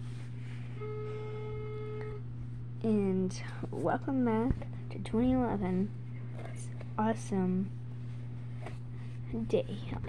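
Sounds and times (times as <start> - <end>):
flat held tone: 0.0 - 3.2
low electrical buzz: 0.0 - 10.0.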